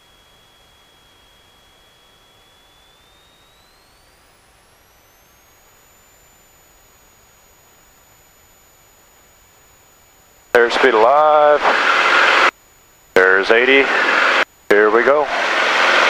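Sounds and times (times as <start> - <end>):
high electrical whine: 0.0 - 16.0
headset intercom hiss: 5.4 - 16.0.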